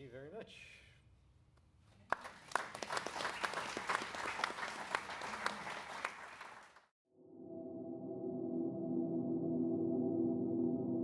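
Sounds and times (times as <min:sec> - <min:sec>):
audience applauding: 0:02.1 - 0:06.9.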